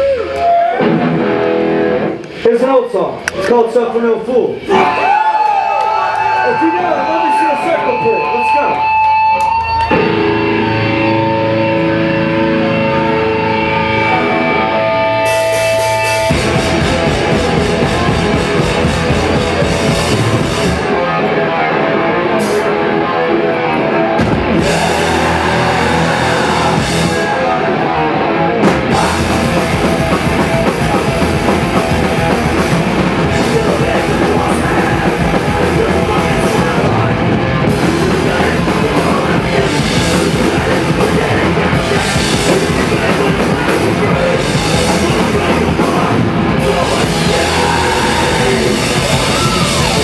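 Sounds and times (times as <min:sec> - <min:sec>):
thrash metal band playing: 0:00.0 - 0:03.0, 0:06.6 - 0:50.0
electric guitars ringing chords: 0:00.2 - 0:02.4, 0:07.6 - 0:50.0.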